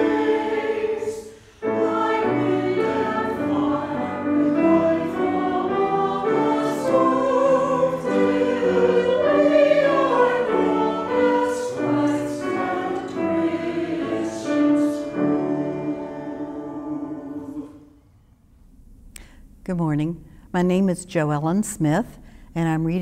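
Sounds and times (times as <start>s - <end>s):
church choir singing a hymn: 0.0s - 18.0s.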